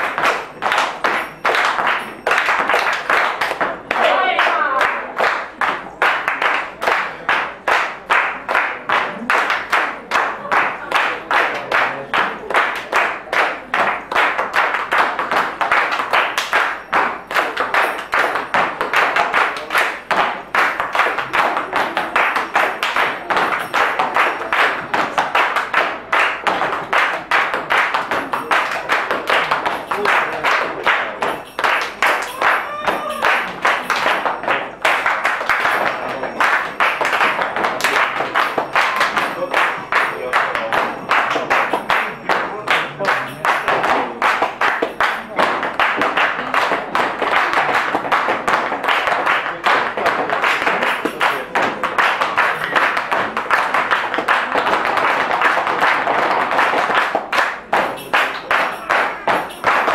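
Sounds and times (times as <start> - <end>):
people clapping in rhythm: 0.0 - 59.9.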